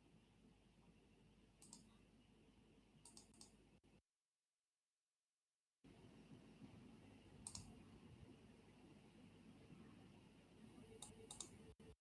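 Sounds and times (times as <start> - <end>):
computer mouse clicks: 1.6 - 2.0, 3.0 - 3.6, 7.4 - 7.8, 11.0 - 11.7.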